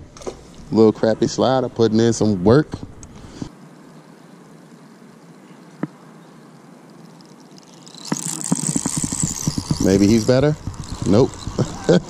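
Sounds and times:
faint steady hiss: 0.0 - 12.0
fishing reel whirring: 6.9 - 12.0.

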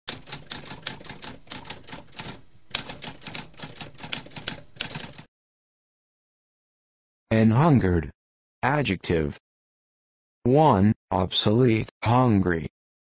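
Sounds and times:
typewriter keys striking: 0.1 - 5.3.

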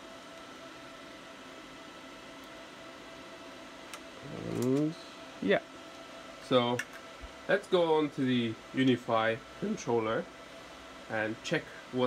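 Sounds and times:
cooling fans whirring: 0.0 - 12.0
faint steady hum: 0.0 - 12.0.

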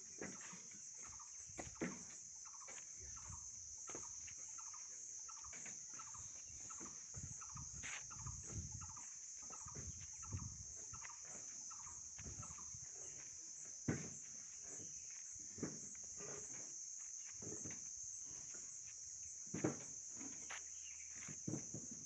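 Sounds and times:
bird calls: 0.0 - 13.6
footsteps on dirt: 0.0 - 22.0
high insect drone: 0.0 - 22.0.

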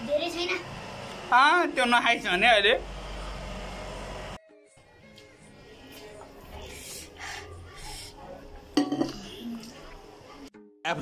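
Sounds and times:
plates and cutlery clinking: 8.8 - 9.7.

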